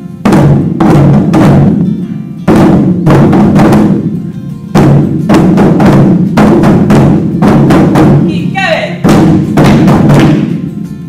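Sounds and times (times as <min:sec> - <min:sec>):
barrel drums struck with sticks: 0:00.2 - 0:10.8.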